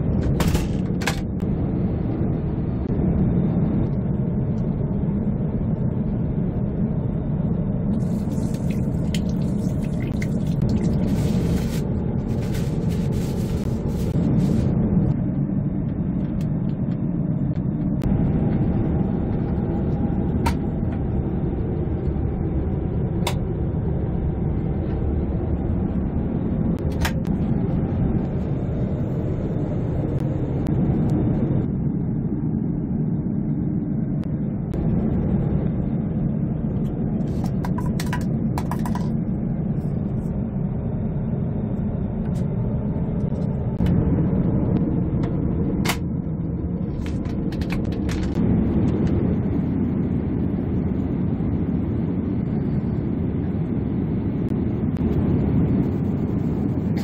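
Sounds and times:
airliner cabin drone: 0.0 - 57.0.

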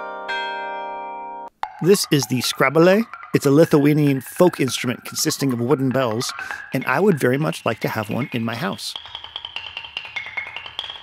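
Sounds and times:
wooden bells knocking: 1.5 - 11.0.

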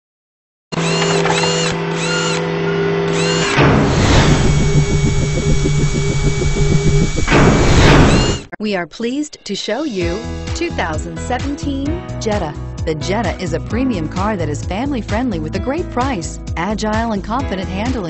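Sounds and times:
mechanical whirring hum: 0.8 - 8.5
fast mechanical rhythm: 3.1 - 8.5
whoosh: 3.5 - 8.5.

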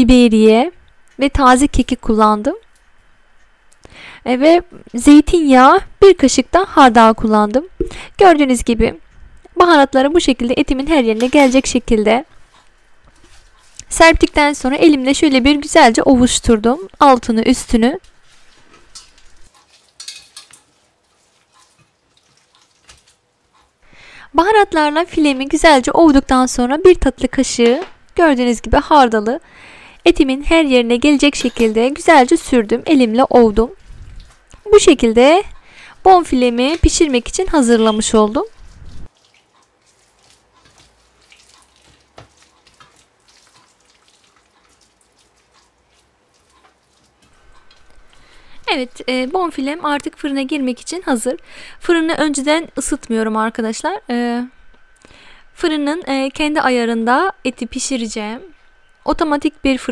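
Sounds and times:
soft rustles: 12.4 - 14.0, 18.0 - 23.8
wet rubbing of hands on meat: 12.4 - 14.0, 18.1 - 23.8, 33.7 - 34.9, 36.4 - 48.6.

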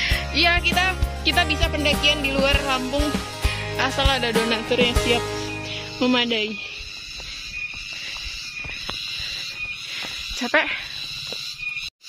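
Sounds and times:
boots on dirt trail: 4.9 - 11.9.

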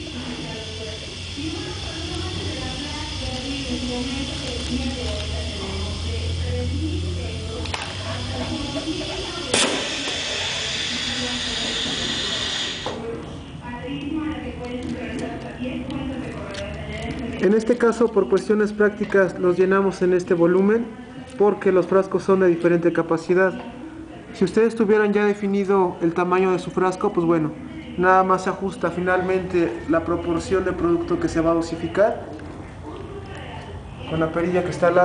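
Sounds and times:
filling machine hissing: 0.0 - 13.2
low machine hum: 0.0 - 17.5.

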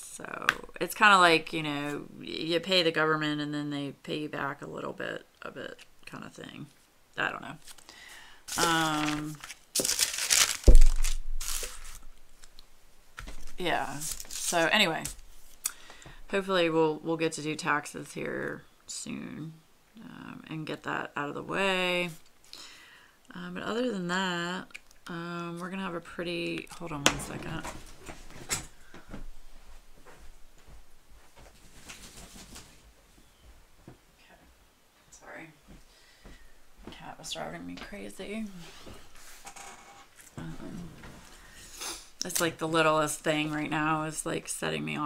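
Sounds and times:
crinkly sheet material rustling: 8.5 - 12.5, 13.2 - 15.6, 27.2 - 33.3.

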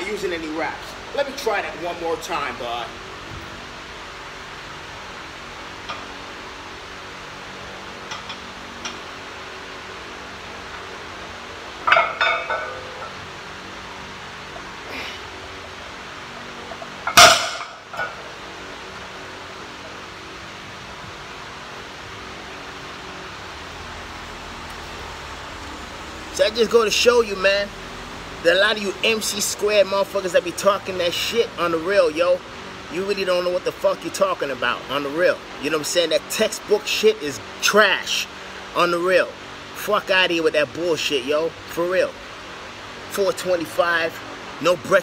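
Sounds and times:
steady background hiss: 0.0 - 45.0
barbell clanging on concrete: 11.8 - 13.2, 17.1 - 18.2.

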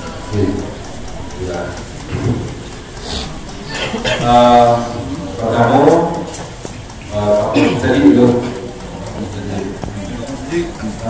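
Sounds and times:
man speaking through loudspeaker: 0.0 - 2.5, 3.9 - 11.0
steady background hiss: 0.0 - 11.0.

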